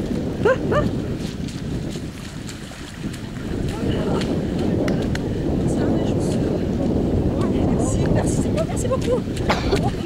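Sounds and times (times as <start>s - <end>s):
faint footfalls on mud: 0.0s - 10.0s
wind buffeting microphone: 0.0s - 10.0s.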